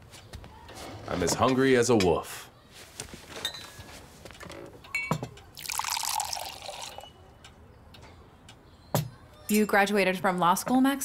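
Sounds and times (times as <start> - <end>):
glass clink: 4.9 - 7.2
juice pouring into a glass: 5.6 - 7.2.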